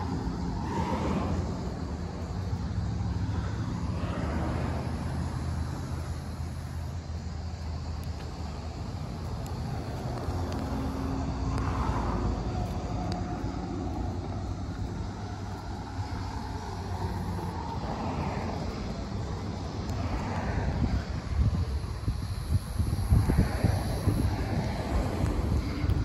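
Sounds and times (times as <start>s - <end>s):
outdoor noise: 0.0s - 26.0s
vehicle engine rumbling: 0.0s - 26.0s.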